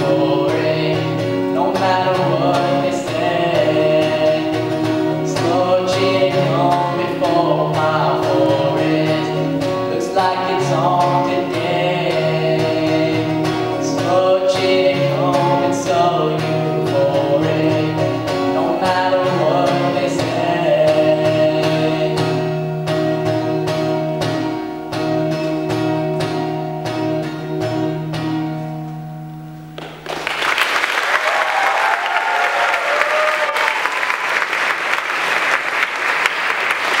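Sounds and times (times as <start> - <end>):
person singing: 0.0 - 22.7
acoustic guitar strumming: 0.0 - 30.2
audience applause and cheering: 29.8 - 37.0.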